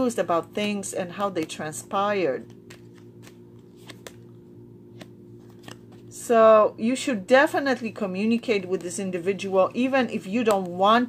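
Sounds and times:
cards clicking together: 0:02.5 - 0:04.3.

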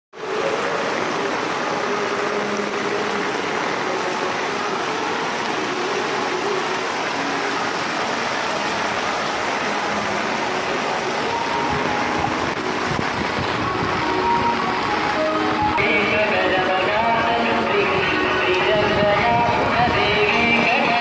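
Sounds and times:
floodwater flowing across road: 0:00.1 - 0:21.0
heavy rain: 0:00.1 - 0:21.0.

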